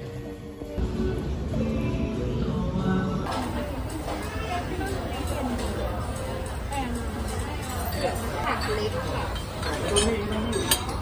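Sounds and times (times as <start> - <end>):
ceramic tableware clinking: 4.8 - 11.0.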